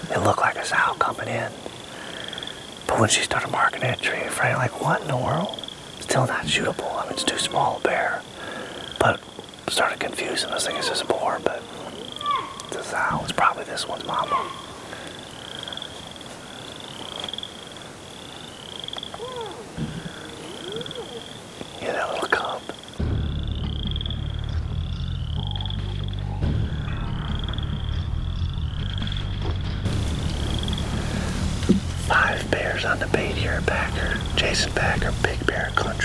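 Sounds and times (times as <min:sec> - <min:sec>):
faint rustle: 0:00.0 - 0:22.9
low background music drone: 0:23.0 - 0:36.0.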